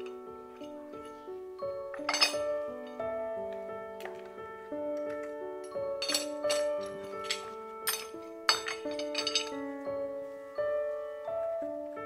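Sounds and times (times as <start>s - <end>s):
background music: 0.0s - 12.0s
metal tool clinking on tray: 1.9s - 3.0s, 5.0s - 9.6s.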